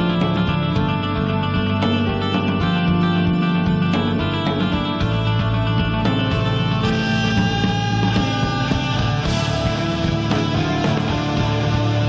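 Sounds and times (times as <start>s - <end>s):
drums: 0.0s - 12.0s
electric guitar chords: 0.0s - 12.0s
keyboard chords: 0.0s - 12.0s.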